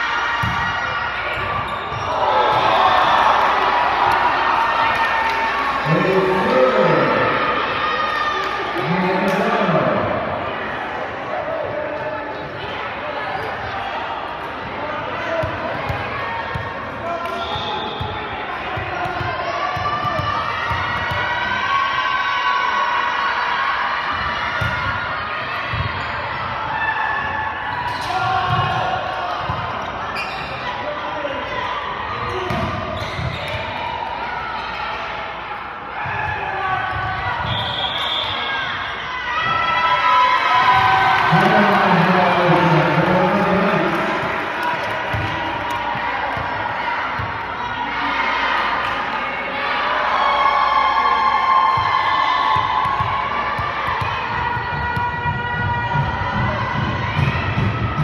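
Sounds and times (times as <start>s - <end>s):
spectator chatter: 0.0s - 58.0s.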